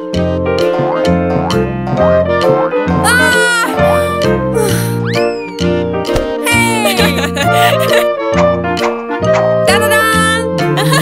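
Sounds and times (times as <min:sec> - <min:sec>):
cartoon background music: 0:00.0 - 0:11.0
cartoon cat meowing: 0:03.0 - 0:03.8.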